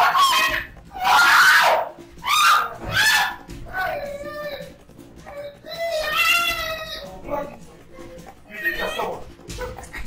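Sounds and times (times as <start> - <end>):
loud vocal cries: 0.0 - 7.2.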